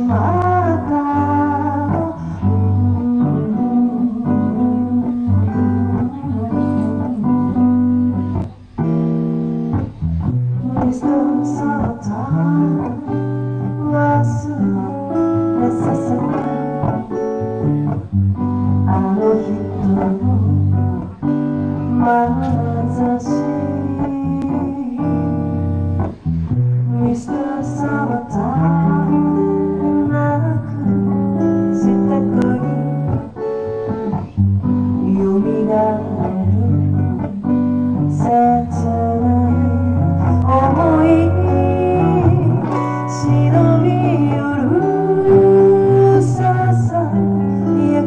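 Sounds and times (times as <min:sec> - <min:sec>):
woman singing into microphone: 0:00.0 - 0:09.1, 0:09.7 - 0:48.0
acoustic guitar chords: 0:00.0 - 0:48.0.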